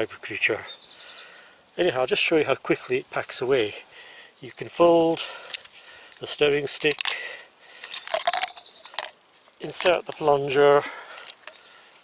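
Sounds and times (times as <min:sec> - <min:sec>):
songbird trilling: 0:00.0 - 0:01.4, 0:05.6 - 0:09.0
plastic parts clicking: 0:06.8 - 0:07.2, 0:07.8 - 0:09.2.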